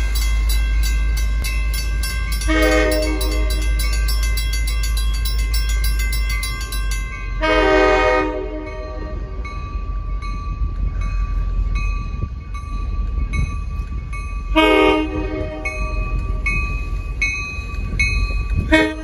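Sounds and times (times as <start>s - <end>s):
crossing bells ringing: 0.0s - 19.0s
locomotive horn blasts: 2.5s - 3.6s, 7.4s - 9.2s, 14.6s - 16.0s, 18.7s - 19.0s.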